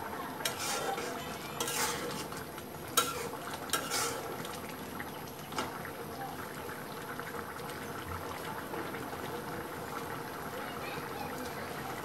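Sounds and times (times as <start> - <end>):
curry bubbling in a metal pot: 0.0 - 12.0.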